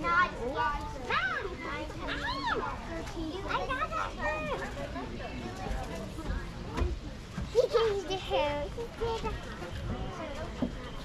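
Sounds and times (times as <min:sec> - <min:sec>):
children's voices: 0:00.0 - 0:11.0
outdoor background noise: 0:00.0 - 0:11.0.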